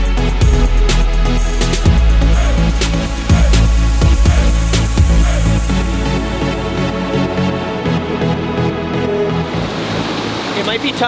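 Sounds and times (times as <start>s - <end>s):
electronic background music: 0.0s - 11.0s
river water rushing over rapids: 9.4s - 11.0s
man speaking: 10.6s - 11.0s.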